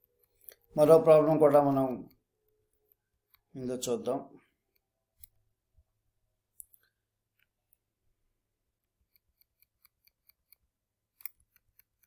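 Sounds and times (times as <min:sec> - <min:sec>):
mouse scroll wheel clicks: 0:09.0 - 0:12.0.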